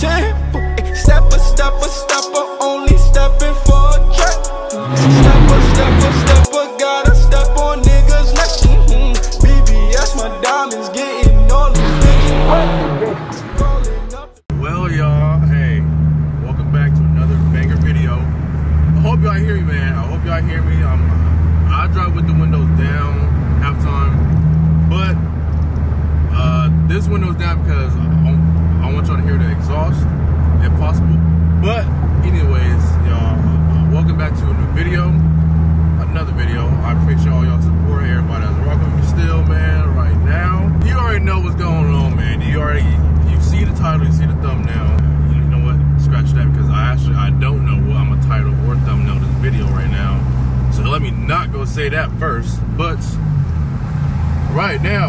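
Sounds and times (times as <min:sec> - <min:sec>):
car cabin drone: 0:03.7 - 0:06.5
man talking: 0:14.5 - 0:18.3, 0:18.9 - 0:24.2, 0:26.3 - 0:30.0, 0:30.6 - 0:35.2, 0:36.0 - 0:53.2, 0:54.5 - 0:55.0.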